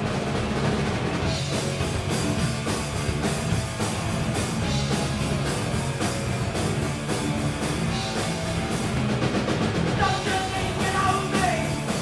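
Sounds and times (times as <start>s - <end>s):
bass guitar: 0.0s - 12.0s
drum kit with cymbal hits: 0.0s - 12.0s
electric guitars: 0.0s - 12.0s.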